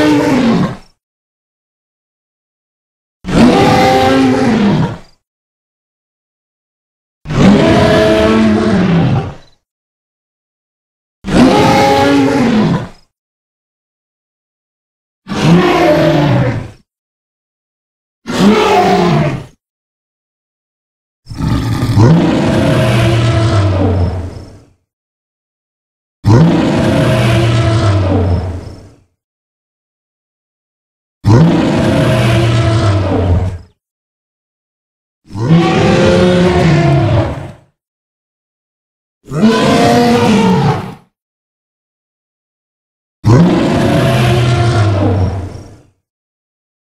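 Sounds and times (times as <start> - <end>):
dinosaur roars: 0.0 - 0.8, 3.3 - 5.1, 7.3 - 9.4, 11.3 - 13.0, 15.3 - 16.8, 18.3 - 19.6, 21.3 - 24.6, 26.2 - 29.0, 31.2 - 33.8, 35.3 - 37.7, 39.3 - 41.1, 43.2 - 46.0.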